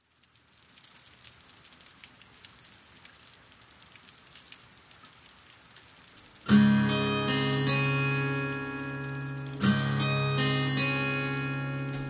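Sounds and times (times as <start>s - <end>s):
guitar chord ringing: 6.5s - 12.0s.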